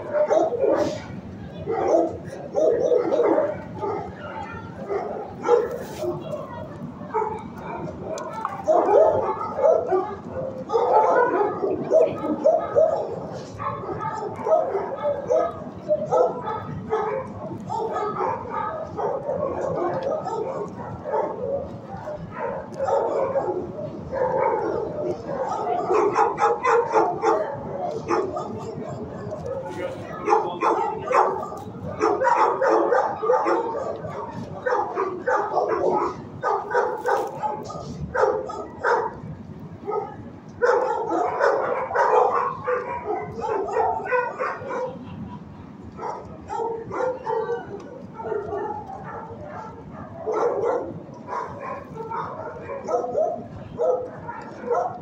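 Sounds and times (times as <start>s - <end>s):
many dogs barking and yipping: 0.0s - 55.0s.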